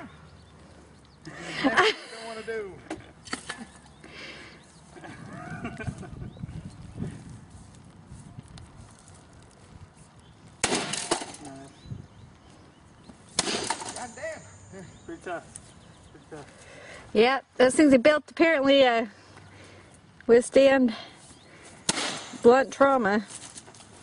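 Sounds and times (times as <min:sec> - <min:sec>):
stick smashing object: 0:10.6 - 0:11.5, 0:13.4 - 0:14.1, 0:21.9 - 0:22.4.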